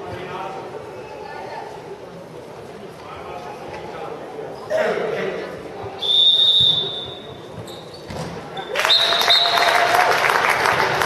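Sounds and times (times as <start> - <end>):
referee's whistle blast: 6.0 - 7.3
crowd clapping and cheering: 8.7 - 11.0.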